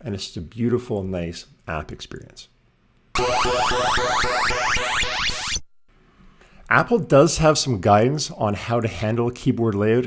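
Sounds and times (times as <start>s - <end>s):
retro arcade electronic jingle: 3.2s - 5.7s.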